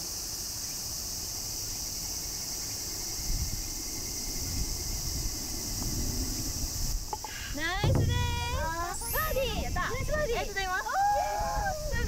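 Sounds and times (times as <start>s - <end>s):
low thud: 7.8s - 10.1s
excited voices cheering: 10.5s - 12.0s.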